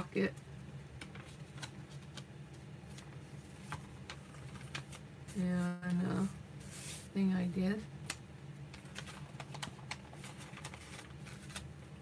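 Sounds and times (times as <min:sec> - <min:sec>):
magazine pages crackling: 0:01.0 - 0:05.4, 0:08.7 - 0:12.0.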